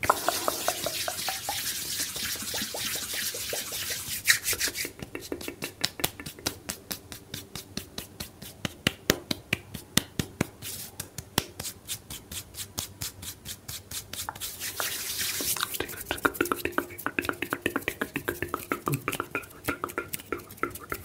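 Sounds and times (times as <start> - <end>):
palm rubbing hiss: 0.1 - 8.8, 10.6 - 21.0
hand snaps and claps: 4.3 - 21.0.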